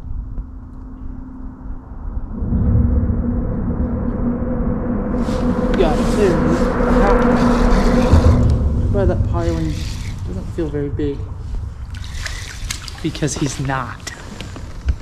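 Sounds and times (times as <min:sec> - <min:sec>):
traffic rumble on bridge: 0:02.7 - 0:15.0.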